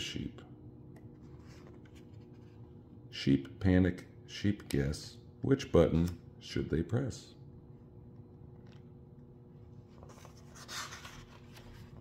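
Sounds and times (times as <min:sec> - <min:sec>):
page turning rustle: 0:09.9 - 0:12.0.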